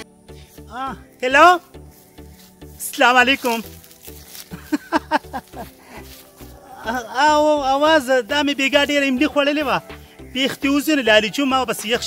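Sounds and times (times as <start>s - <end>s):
background music with steady beat: 0.0s - 12.0s
man laughing: 4.5s - 6.0s.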